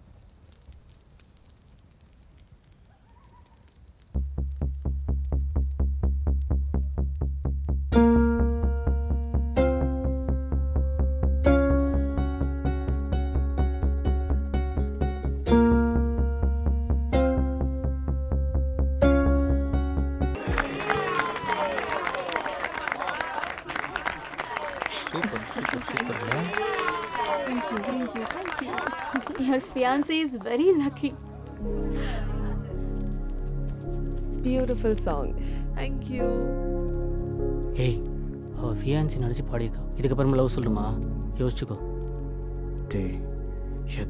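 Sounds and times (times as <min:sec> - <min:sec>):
group clapping and cheering: 0:20.3 - 0:33.5.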